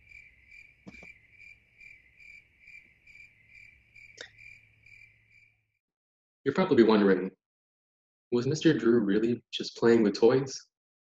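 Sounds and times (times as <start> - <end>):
cricket chirping: 0.0 - 5.7.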